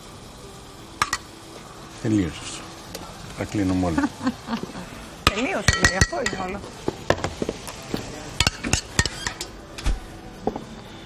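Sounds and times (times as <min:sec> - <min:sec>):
faint steady hiss: 0:00.0 - 0:11.0
metal spoon clinking saucepan: 0:05.2 - 0:06.6, 0:08.4 - 0:09.5.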